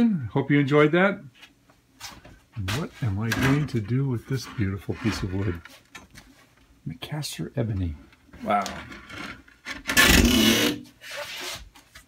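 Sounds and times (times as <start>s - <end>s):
wooden board scraping lumber: 9.0s - 11.6s.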